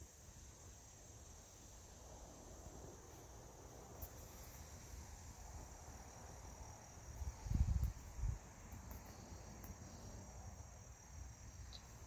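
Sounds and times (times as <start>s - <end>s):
insect chorus trilling: 0.0s - 12.0s.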